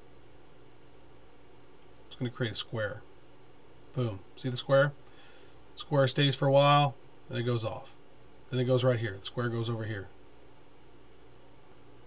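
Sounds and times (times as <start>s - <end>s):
faint background hiss: 0.0s - 12.0s
low even hum: 0.0s - 12.0s.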